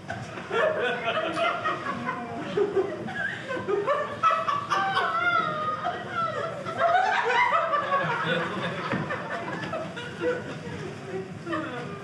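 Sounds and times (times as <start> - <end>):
audience laughing: 0.0 - 12.0.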